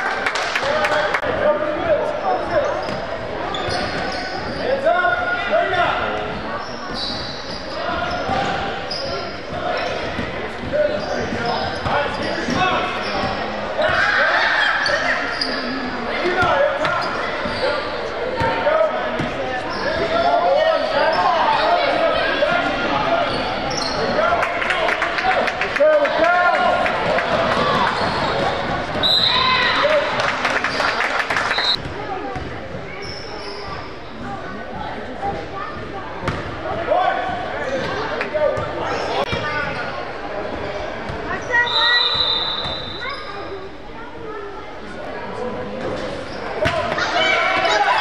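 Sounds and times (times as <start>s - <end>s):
echoing voices in a hall: 0.0s - 48.0s.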